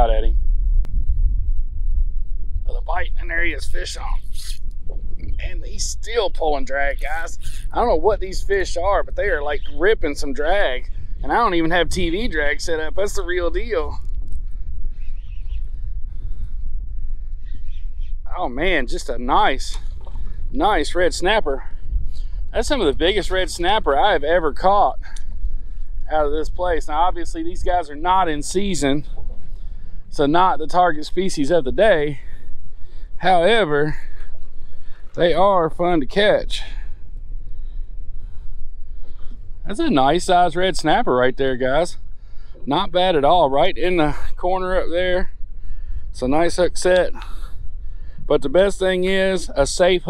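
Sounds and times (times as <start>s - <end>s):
wind buffeting microphone: 0.0s - 50.0s.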